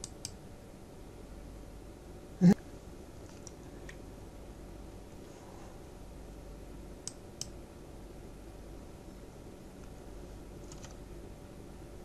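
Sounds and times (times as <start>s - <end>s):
computer mouse clicks: 0.0s - 0.4s, 7.0s - 7.6s, 10.6s - 11.0s
faint low hum: 0.0s - 12.0s.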